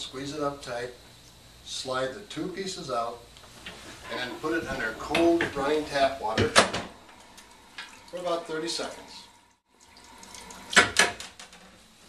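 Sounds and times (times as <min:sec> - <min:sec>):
tap water running into a sink: 0:06.3 - 0:11.6.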